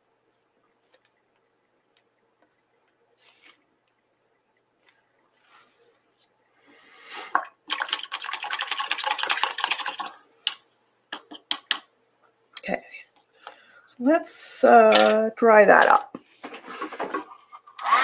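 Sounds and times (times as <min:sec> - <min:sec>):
paintbrush swishing in water jar: 0:05.3 - 0:06.1
brush clicking against glass: 0:10.5 - 0:11.9
brush tapping on jar rim: 0:10.5 - 0:11.9.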